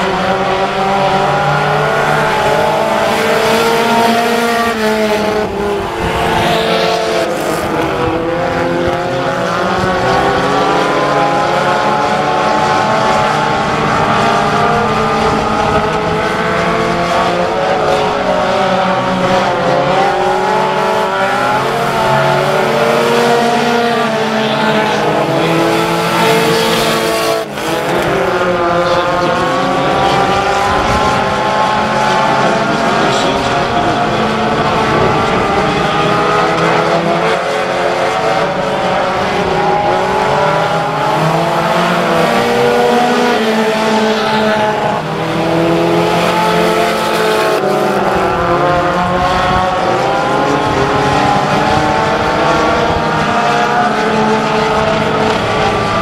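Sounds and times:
race car engines revving: 0.0 - 56.0.

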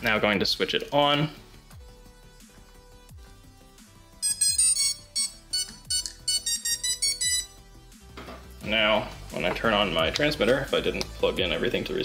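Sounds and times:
soft music with steady beat: 1.1 - 12.0
short electronic beeps: 4.2 - 7.6.

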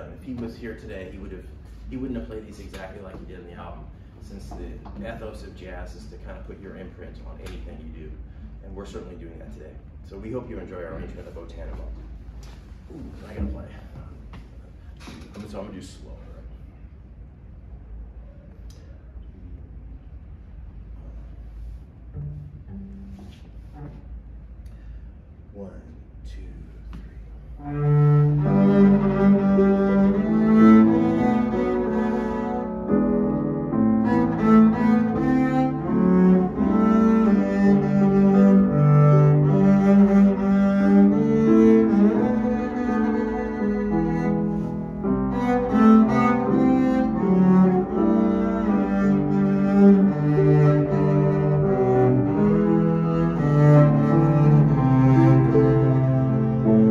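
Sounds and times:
double bass bowed notes: 20.5 - 25.5, 26.2 - 56.9
grand piano accompaniment: 27.6 - 56.9.

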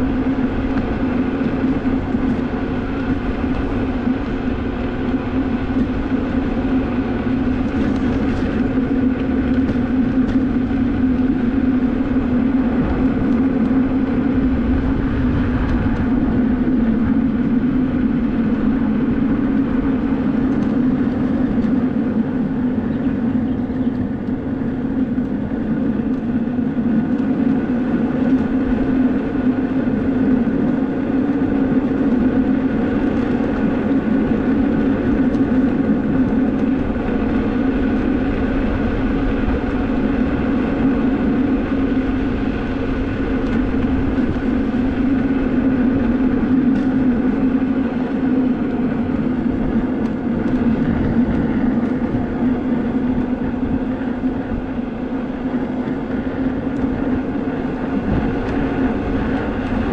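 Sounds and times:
electric motor hum: 0.0 - 59.9
tyres rolling on asphalt: 0.0 - 59.9
wind rumbling on microphone: 0.0 - 59.9.

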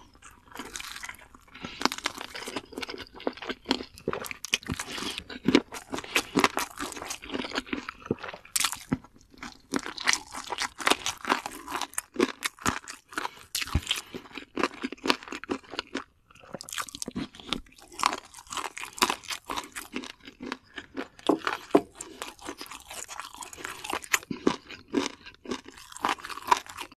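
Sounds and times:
crunching and chewing fried chicken: 0.0 - 27.0.

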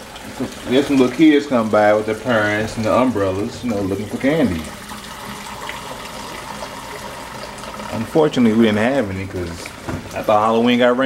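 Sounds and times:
water running from tap: 0.0 - 11.0.

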